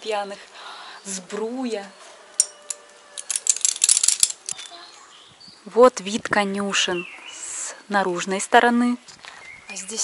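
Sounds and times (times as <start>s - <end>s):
horse tack jingling: 2.4s - 4.9s.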